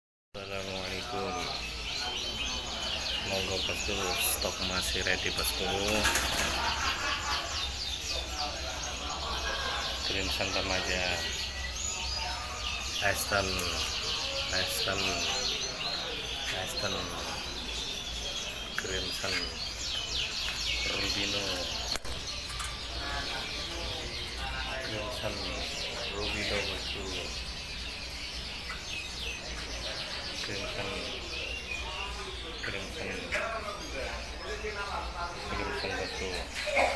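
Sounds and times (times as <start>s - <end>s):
caged birds chirping: 0.4s - 36.9s.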